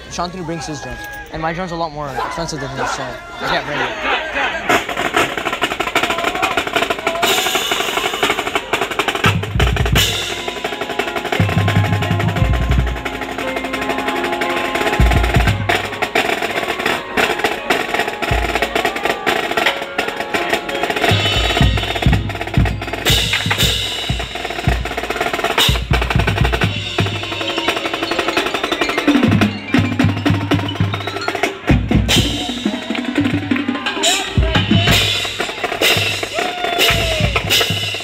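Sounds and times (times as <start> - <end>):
marching band playing: 0.0 - 38.0
snare drum rolls: 4.6 - 38.0.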